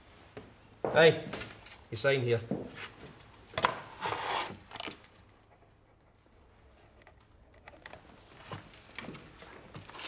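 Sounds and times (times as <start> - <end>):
papers rustling and scraping: 2.8 - 5.0, 7.9 - 10.0.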